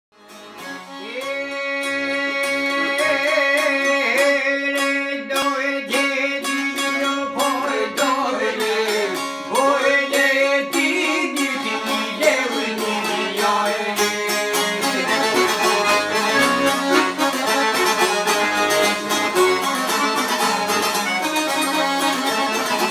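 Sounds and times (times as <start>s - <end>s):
accordion drone notes: 0.2s - 22.9s
plucked lute melody: 0.3s - 22.9s.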